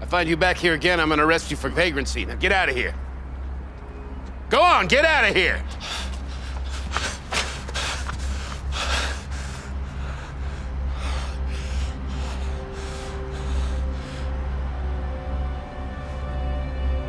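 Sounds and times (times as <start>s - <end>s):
low hum: 0.0s - 17.0s
man breathing heavily: 5.6s - 15.3s.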